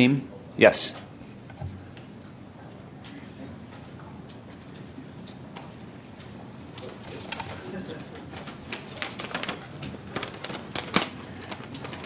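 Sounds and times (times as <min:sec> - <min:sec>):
faint murmuring voices: 0:06.5 - 0:09.3
papers rustling and clicking: 0:06.7 - 0:12.0.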